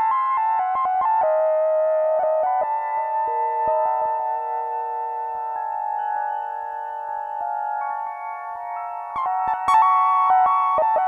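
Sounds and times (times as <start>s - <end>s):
synthesizer keyboard music: 0.0s - 11.0s.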